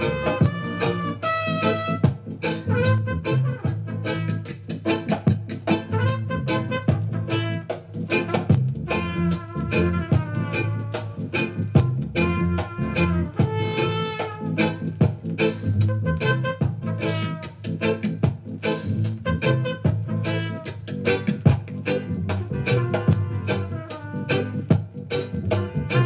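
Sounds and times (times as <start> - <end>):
reggae instrumental with horns: 0.0 - 26.0.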